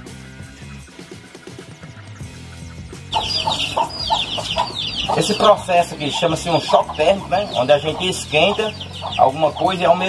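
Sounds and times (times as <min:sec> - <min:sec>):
chickens clucking: 0:01.5 - 0:10.0.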